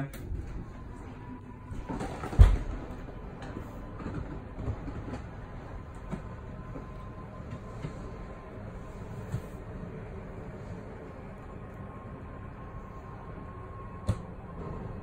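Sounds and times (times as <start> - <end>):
slide room motor running: 0.0 - 15.0.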